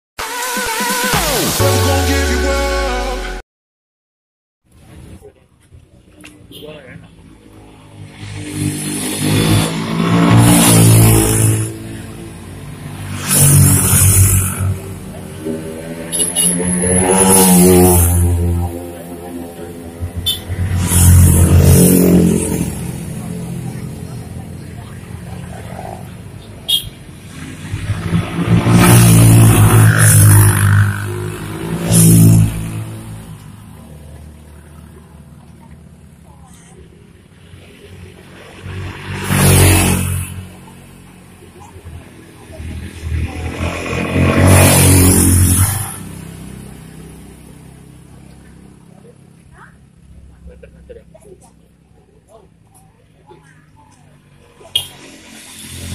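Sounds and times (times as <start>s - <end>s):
motorcycles passing by: 5.0s - 55.9s.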